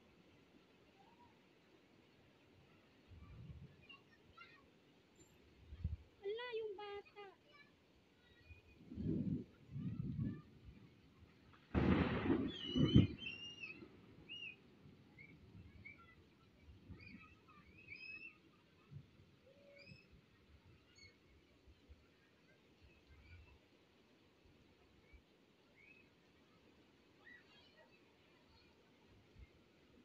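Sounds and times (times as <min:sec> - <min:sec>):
loud burst of noise: 0:11.7 - 0:13.8.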